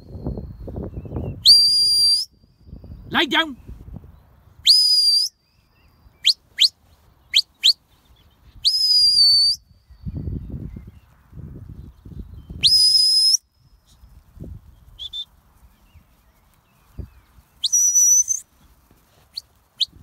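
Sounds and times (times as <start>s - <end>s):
shepherd's whistle: 0.1s - 3.0s, 4.6s - 7.8s, 8.5s - 10.2s, 12.5s - 14.1s, 14.8s - 15.3s, 17.6s - 18.5s, 19.1s - 20.0s.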